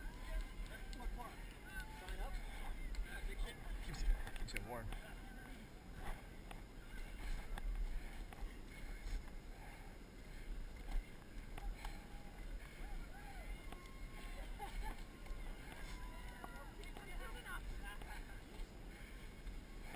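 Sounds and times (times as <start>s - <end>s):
people shouting and calling: 11.7s - 17.3s.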